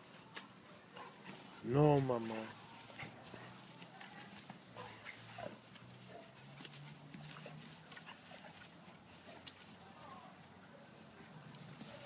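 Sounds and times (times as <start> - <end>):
dogs scuffling: 0.3 - 12.0.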